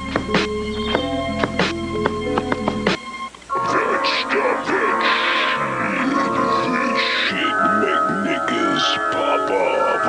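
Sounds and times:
turntable scratching: 0.0s - 8.8s
music of sustained tones: 0.0s - 10.0s.

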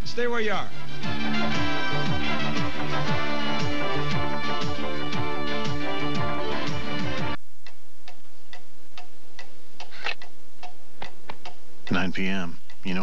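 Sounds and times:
music sting: 0.7s - 7.4s
clock ticking: 6.7s - 13.0s.

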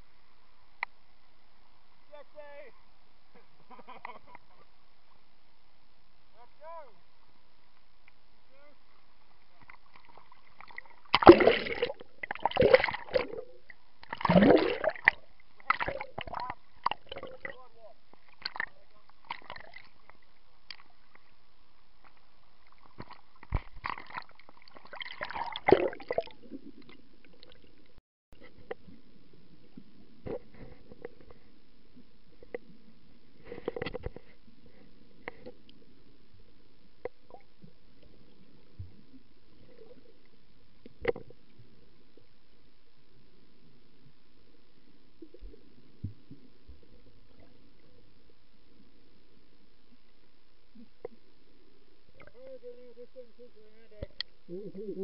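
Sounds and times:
water sloshing and splashing: 9.6s - 21.3s, 22.1s - 28.8s.

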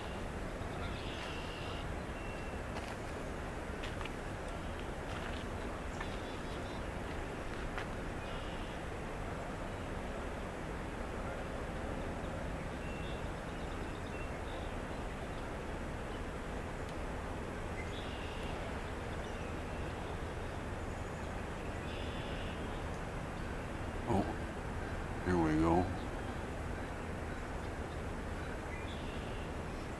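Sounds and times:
low outdoor rumble: 0.0s - 29.9s.

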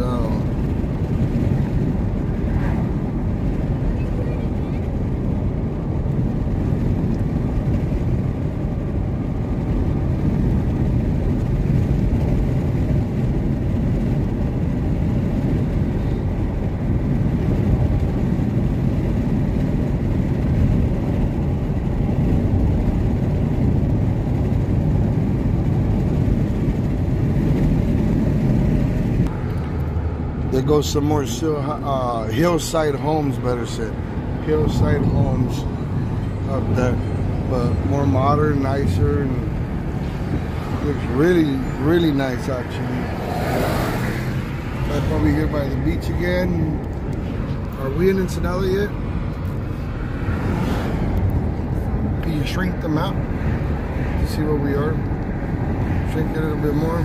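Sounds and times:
road noise: 0.0s - 57.0s
wind buffeting in moving car: 0.0s - 57.0s.

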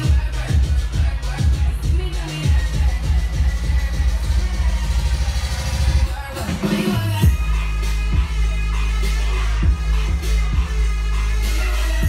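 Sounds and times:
electronic dance music: 0.0s - 12.0s
pulsing bass line: 0.0s - 12.0s.

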